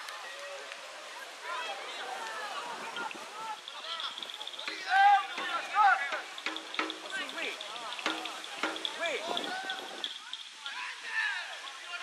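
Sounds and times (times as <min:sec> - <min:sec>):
people shouting and calling: 0:00.0 - 0:12.0.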